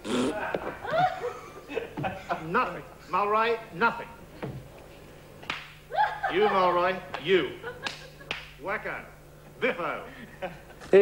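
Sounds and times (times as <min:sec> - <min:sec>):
man laughing: 0:00.3 - 0:02.5, 0:06.0 - 0:06.9, 0:10.0 - 0:11.0.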